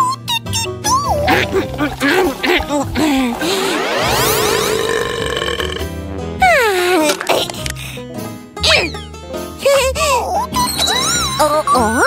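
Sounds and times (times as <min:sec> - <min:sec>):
music: 0:00.0 - 0:12.0
gulping: 0:00.9 - 0:05.9
cartoon burp: 0:01.2 - 0:06.1
rising sweep: 0:03.2 - 0:06.4.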